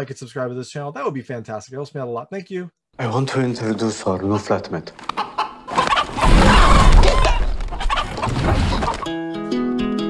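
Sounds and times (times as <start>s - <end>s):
wings flapping: 5.0s - 9.1s
rooster clucking and squawking: 5.1s - 9.1s.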